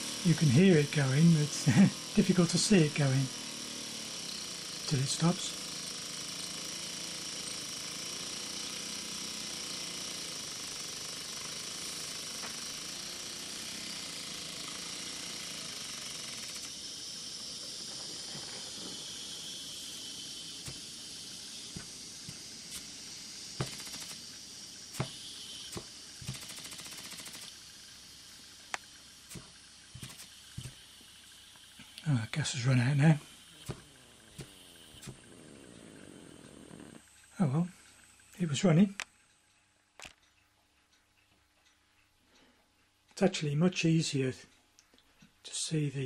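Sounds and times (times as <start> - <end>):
burner hiss: 0.0 - 39.0
small steam engine running: 0.0 - 40.2, 45.4 - 46.0
small clicks: 23.6 - 27.6, 28.6 - 32.1, 37.2 - 42.9.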